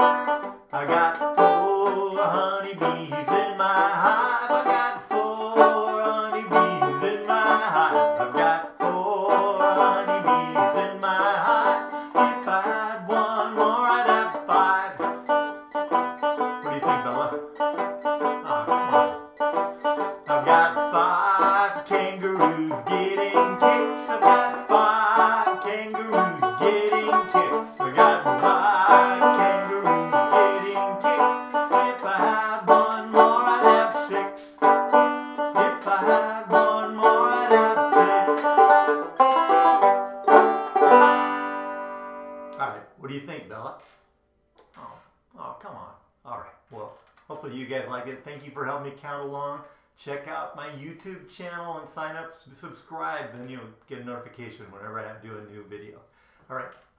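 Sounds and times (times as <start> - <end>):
banjo chord ringing: 0.0 - 42.6
banjo picking: 0.0 - 42.8.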